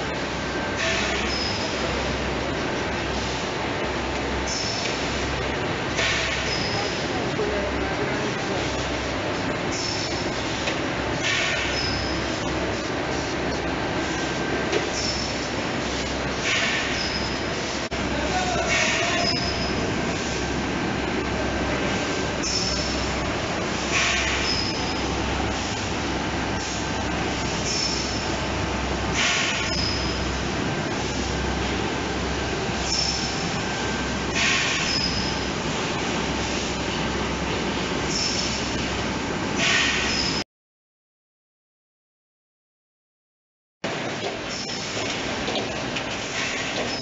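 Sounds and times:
low machine hum: 0.0 - 39.6
mechanical clatter of filling machine: 0.1 - 20.4, 21.2 - 30.4, 43.9 - 47.0.

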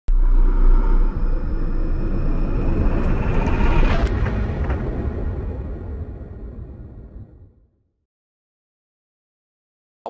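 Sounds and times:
deep rumble: 0.1 - 7.8.

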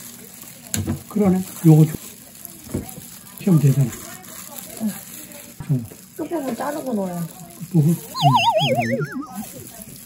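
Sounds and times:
wobbling whistle sliding down: 8.2 - 9.4.

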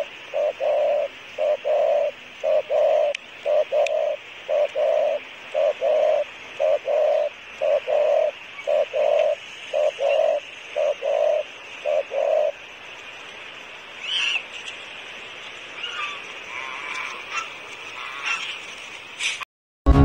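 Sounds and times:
dove cooing: 0.0 - 12.7.

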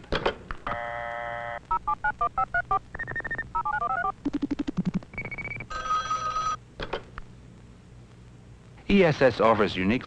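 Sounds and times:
telephone ringing: 0.7 - 4.2, 5.2 - 6.6.

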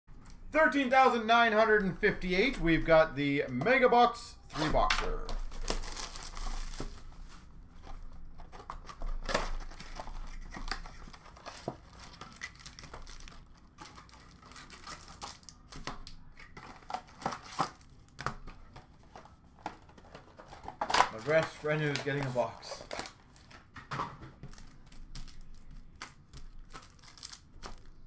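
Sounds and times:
plastic and foil crinkling: 4.7 - 23.8, 24.4 - 28.0.

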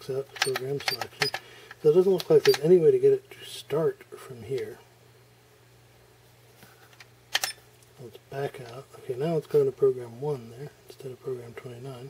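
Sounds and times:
faint steady hum: 0.0 - 12.0
push-button clicks: 2.4 - 2.6.

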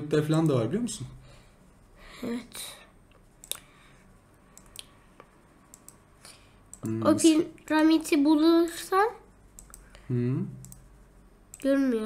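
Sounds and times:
computer mouse clicks: 3.4 - 3.7, 4.5 - 6.0, 6.7 - 7.0, 9.5 - 10.0, 10.6 - 10.9, 11.5 - 11.7
person speaking: 6.8 - 9.2.

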